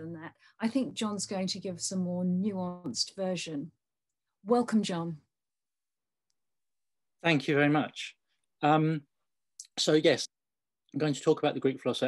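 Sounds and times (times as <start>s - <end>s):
woman speaking: 0.0s - 3.8s, 4.4s - 5.3s.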